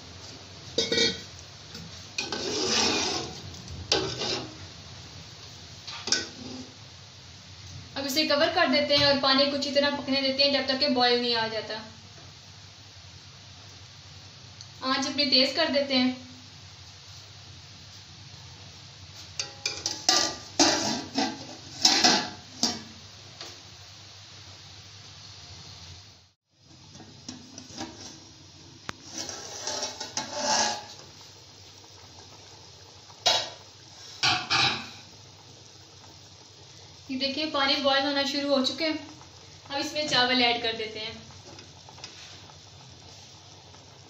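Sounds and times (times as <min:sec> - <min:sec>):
metal lid and ladle clattering on pot: 0:00.8 - 0:01.3, 0:05.9 - 0:06.6, 0:19.4 - 0:22.9, 0:34.2 - 0:35.0.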